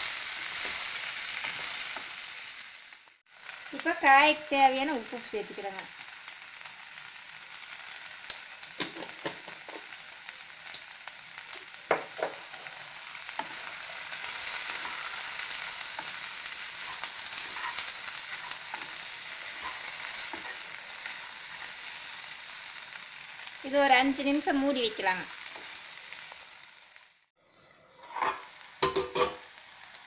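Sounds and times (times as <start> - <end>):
beans sizzling in oil: 0.0 - 27.3, 27.9 - 30.0
spatula scraping a pan: 16.0 - 20.6.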